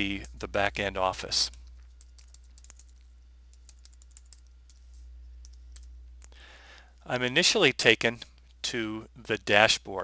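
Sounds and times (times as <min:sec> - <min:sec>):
faint keyboard keystrokes: 0:01.5 - 0:06.4.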